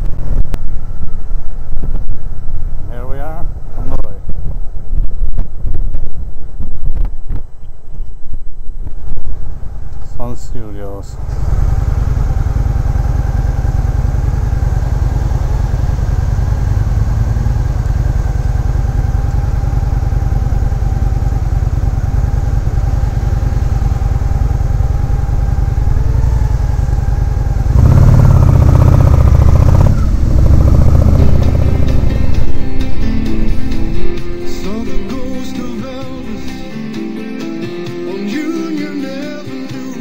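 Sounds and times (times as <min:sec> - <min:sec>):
motorcycle engine idling: 0:11.1 - 0:34.8
motorcycle revving: 0:11.1 - 0:35.2.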